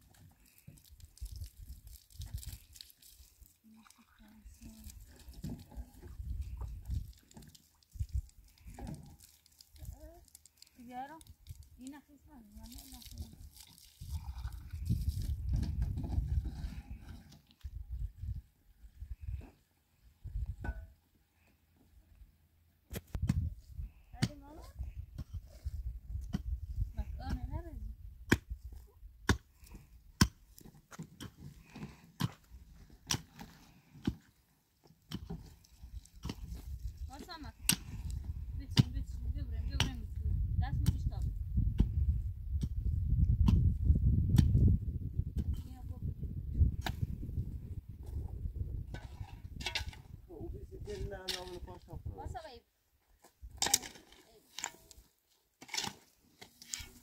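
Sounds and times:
digging tool striking stony earth: 22.9 - 23.5, 24.1 - 24.6, 25.2 - 34.4, 35.0 - 44.8, 46.7 - 47.2, 48.9 - 50.1, 53.4 - 55.0, 55.6 - 57.0.

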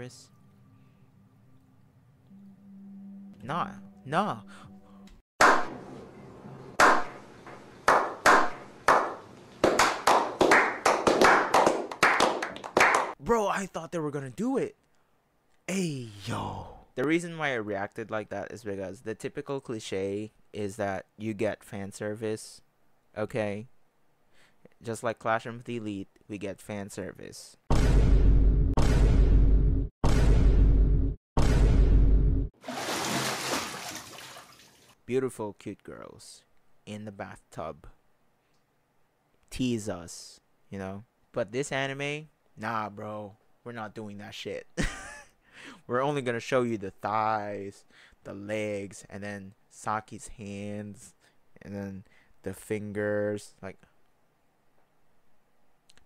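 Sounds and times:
hand claps with echo: 6.8 - 7.1, 7.9 - 13.2
bathwater sloshing and trickling: 32.6 - 35.0.

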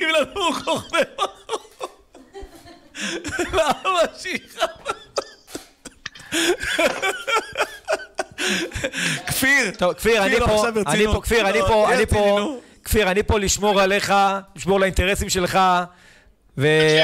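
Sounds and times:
man laughing heartily: 0.0 - 9.3.

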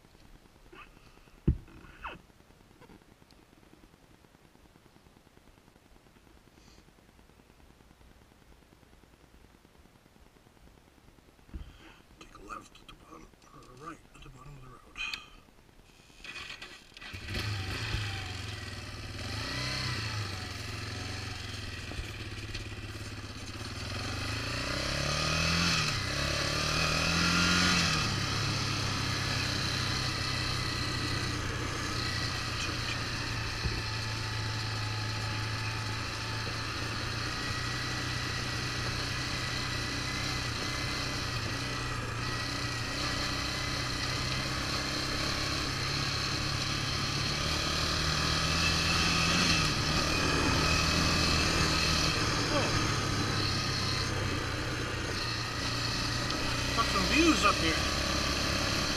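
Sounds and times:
quad bike engine revving: 16.2 - 58.9.

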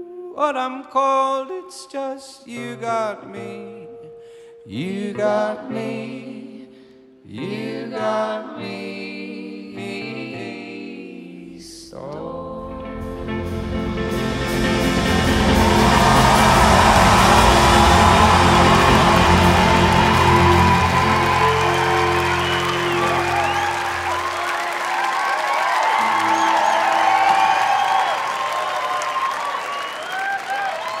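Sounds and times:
live band final chord: 12.9 - 29.1
audience cheering and applauding: 13.8 - 31.0.

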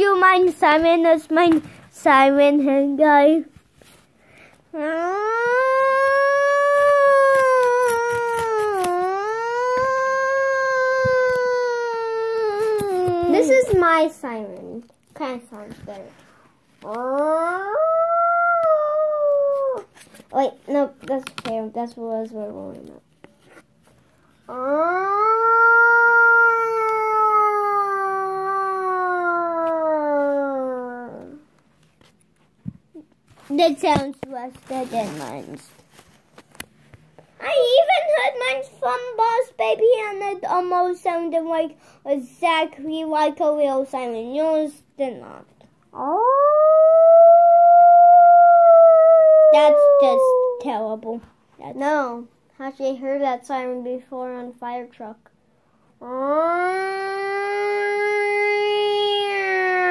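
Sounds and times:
child imitating a siren: 4.7 - 13.5, 16.8 - 19.9, 24.5 - 31.4, 45.9 - 51.0, 56.0 - 59.9.

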